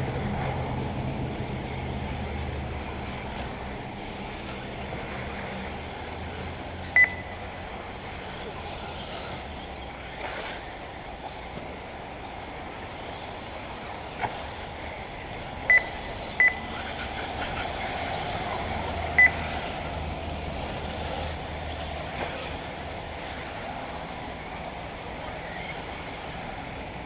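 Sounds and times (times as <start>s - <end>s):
steady background hiss: 0.0s - 27.0s
short high electronic beeps: 7.0s - 7.4s, 15.7s - 16.7s, 19.2s - 19.4s.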